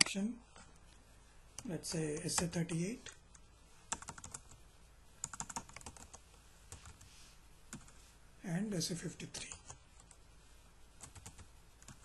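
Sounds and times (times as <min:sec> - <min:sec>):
computer keyboard typing: 0:03.3 - 0:04.6, 0:05.2 - 0:07.0, 0:11.0 - 0:12.0.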